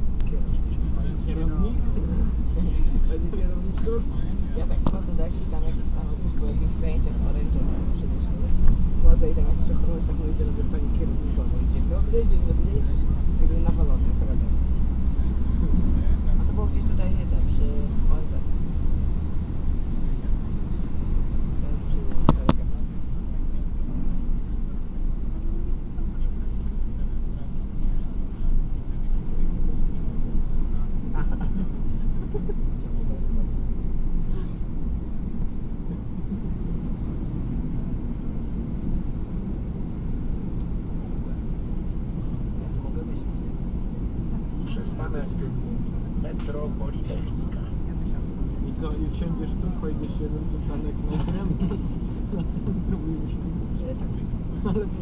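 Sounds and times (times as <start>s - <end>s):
bus engine rumble: 0.0s - 55.0s.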